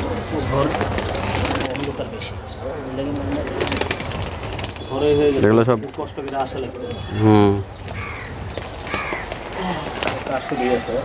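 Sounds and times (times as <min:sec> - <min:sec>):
pigeons cooing: 0:05.8 - 0:11.0.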